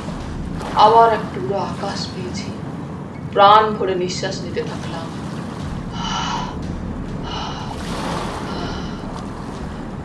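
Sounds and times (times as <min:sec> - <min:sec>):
rushing water: 0:00.0 - 0:10.0.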